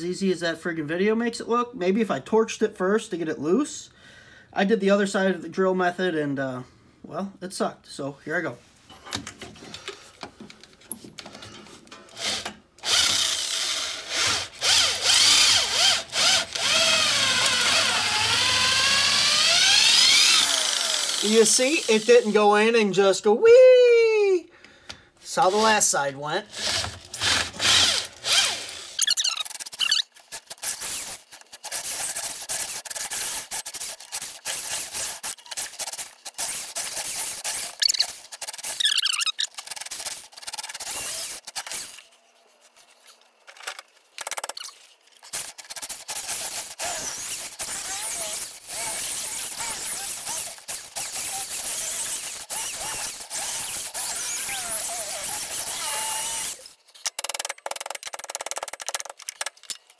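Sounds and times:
cordless drill boring through rubber: 0:12.2 - 0:22.4, 0:26.5 - 0:42.0, 0:45.3 - 0:56.7
drill bit squealing in rubber: 0:12.8 - 0:22.2, 0:26.6 - 0:42.0, 0:44.3 - 0:44.8, 0:45.4 - 0:56.8.

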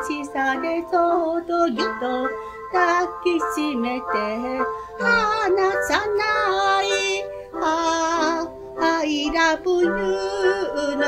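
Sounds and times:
electric keyboard chords: 0:00.0 - 0:11.0
woman singing pop ballad: 0:00.0 - 0:11.0.

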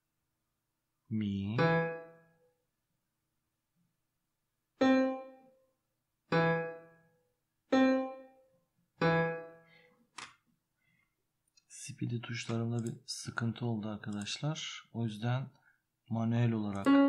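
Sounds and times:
single piano notes: 0:16.7 - 0:17.0.

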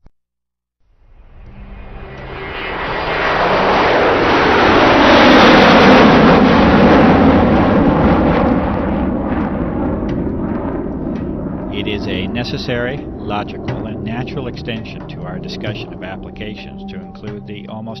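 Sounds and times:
aircraft passing overhead: 0:00.9 - 0:18.0.

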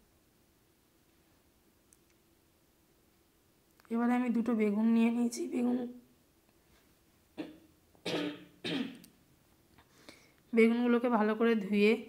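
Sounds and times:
person clearing throat: 0:07.4 - 0:09.0
person coughing: 0:07.4 - 0:09.0.

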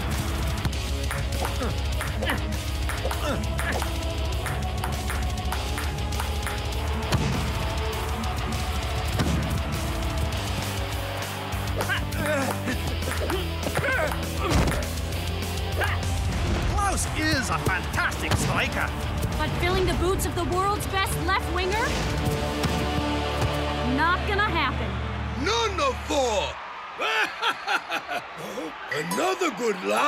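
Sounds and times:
wordless vocal sounds: 0:01.4 - 0:08.7.

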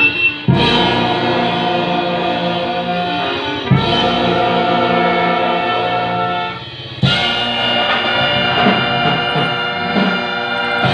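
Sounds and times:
brass band playing: 0:00.0 - 0:10.9.

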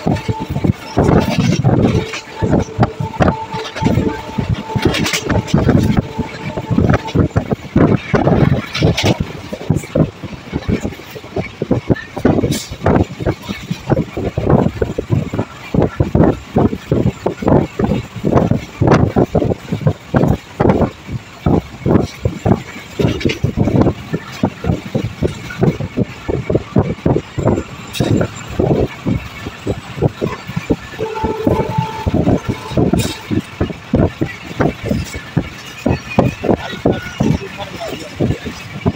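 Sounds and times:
track noise rushing: 0:00.0 - 0:22.5, 0:24.6 - 0:38.9
train wheels clattering over rail joints: 0:00.0 - 0:31.0, 0:32.2 - 0:38.9
short steady tone: 0:31.0 - 0:33.4.

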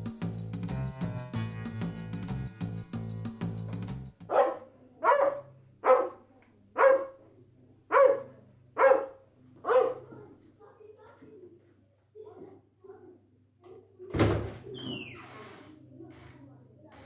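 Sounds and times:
music: 0:00.0 - 0:04.4
dog barking: 0:04.3 - 0:07.3, 0:07.9 - 0:10.3.

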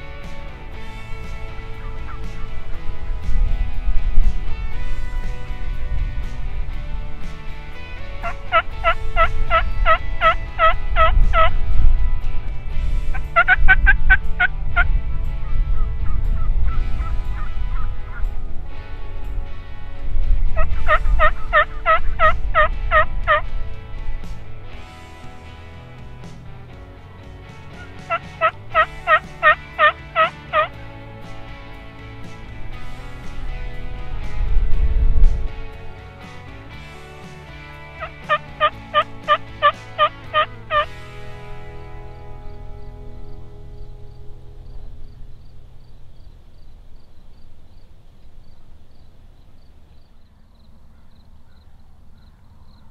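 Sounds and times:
background music: 0:00.0 - 0:46.5
turkey hen yelping: 0:08.5 - 0:11.5, 0:13.4 - 0:13.7, 0:16.4 - 0:18.2, 0:20.6 - 0:23.4, 0:27.8 - 0:30.7, 0:38.0 - 0:40.8, 0:50.0 - 0:52.9.

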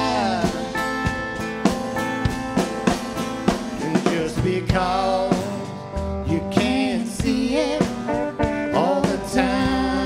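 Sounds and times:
person singing: 0:00.0 - 0:01.0, 0:03.7 - 0:10.0
drums steady beat: 0:00.0 - 0:10.0
guitars ringing chords: 0:00.0 - 0:10.0.

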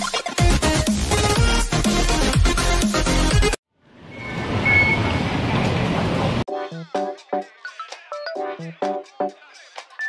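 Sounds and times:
short high electronic beep: 0:04.1 - 0:05.2.

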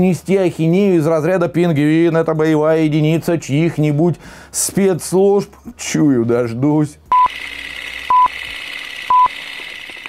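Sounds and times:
short electronic beeps: 0:07.1 - 0:07.3, 0:08.1 - 0:08.3, 0:09.1 - 0:09.4.

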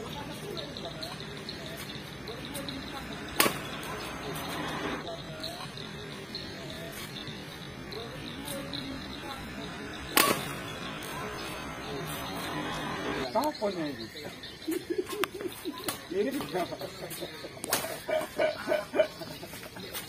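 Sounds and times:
faint murmuring voices: 0:00.0 - 0:20.0
badminton racket hitting shuttlecock: 0:03.3 - 0:04.6, 0:10.1 - 0:11.5.

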